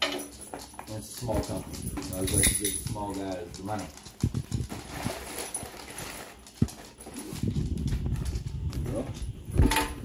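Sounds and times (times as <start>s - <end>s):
paper packing rustling: 4.4s - 8.2s.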